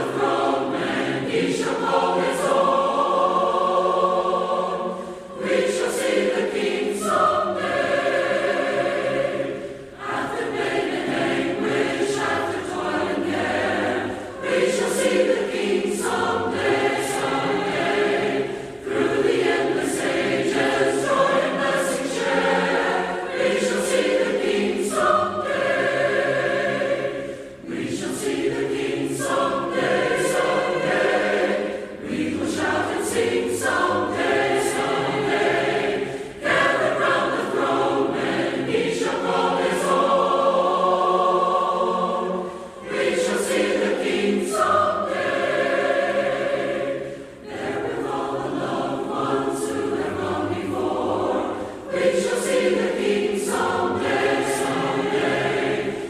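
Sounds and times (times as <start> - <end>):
congregation singing a hymn: 0.0 - 56.0.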